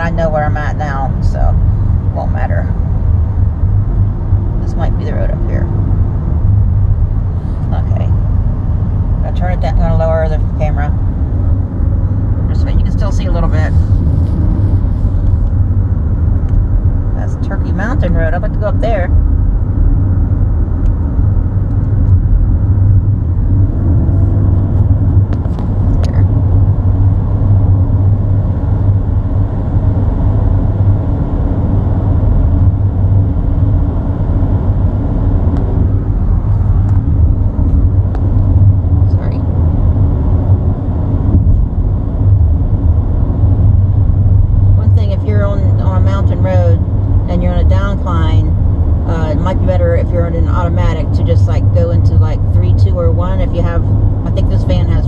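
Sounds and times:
van engine and tyres rumbling: 0.0 - 55.0.

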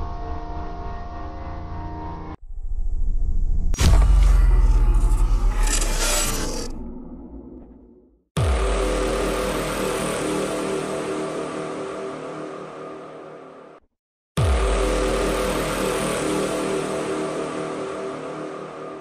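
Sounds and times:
deep boom with rushing tone: 2.4 - 5.6.

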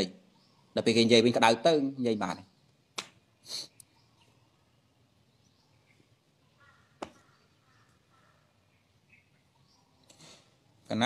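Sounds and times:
man speaking: 0.0 - 0.2, 0.8 - 2.5
short hiss: 3.0 - 3.8, 10.1 - 10.6.

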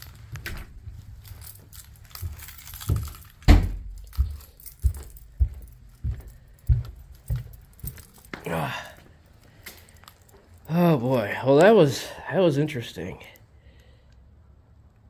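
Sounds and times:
light rattling and clicking: 0.0 - 8.4
footsteps down indoor stairs: 0.1 - 11.7.

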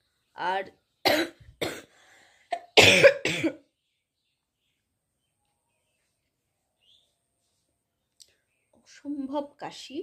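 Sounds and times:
woman coughing: 1.0 - 1.9, 2.6 - 3.7.

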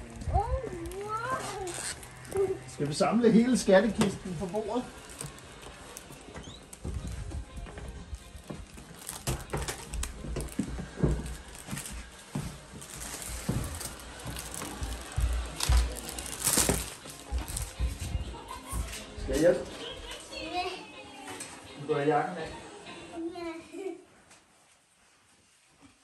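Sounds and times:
footsteps on indoor floor: 3.9 - 21.7.

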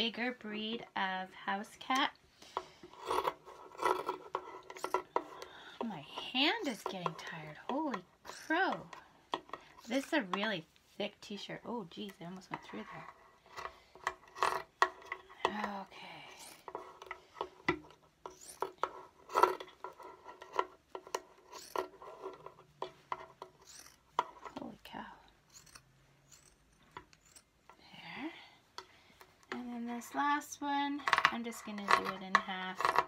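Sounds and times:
scissors cutting thick fabric: 18.3 - 19.7, 21.1 - 22.5, 23.4 - 24.7, 25.5 - 27.5.

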